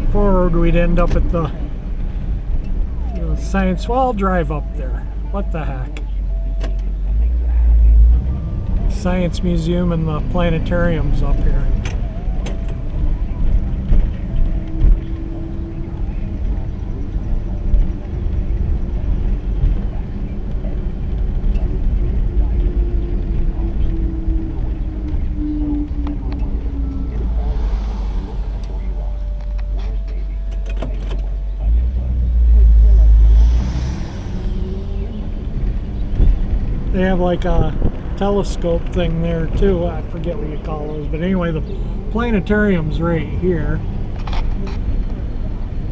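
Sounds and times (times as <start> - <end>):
car engine cruising: 0.0 - 45.9
low road rumble: 0.0 - 45.9.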